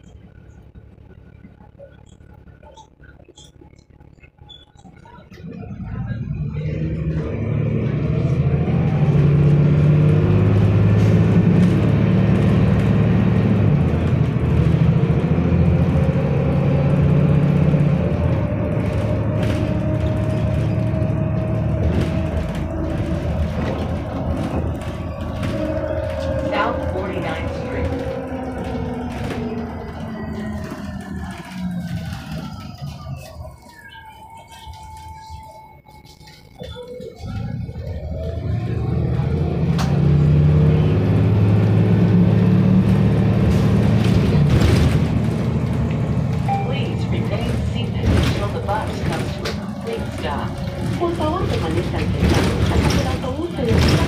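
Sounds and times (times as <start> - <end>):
higher whine gliding down: 0.0 - 44.3
bus diesel engine pulling: 0.0 - 54.0
transmission whine: 0.0 - 54.0.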